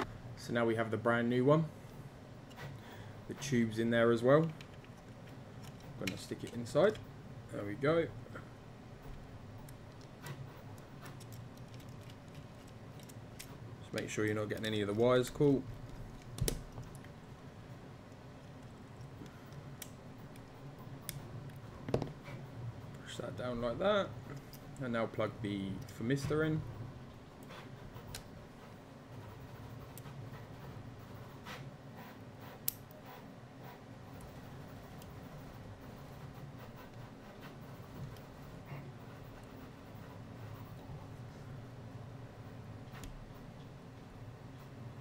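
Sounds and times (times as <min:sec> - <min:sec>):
low steady hum: 0:00.0 - 0:45.0
clicks and taps of small parts: 0:09.6 - 0:14.7.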